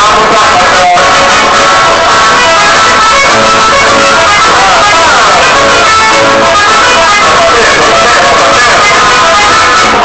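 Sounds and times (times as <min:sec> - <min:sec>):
person singing: 0:00.0 - 0:10.0
plucked guitar: 0:00.0 - 0:10.0.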